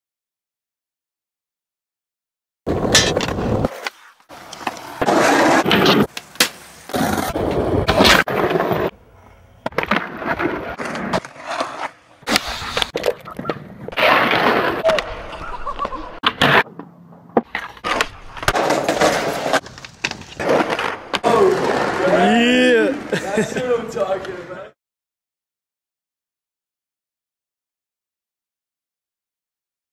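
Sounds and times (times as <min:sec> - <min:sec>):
skateboards rolling on concrete: 0:02.7 - 0:24.8.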